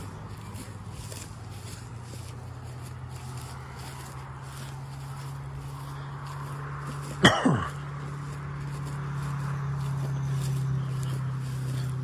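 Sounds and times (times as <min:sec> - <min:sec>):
car engine and tyre hum: 0:00.0 - 0:12.0.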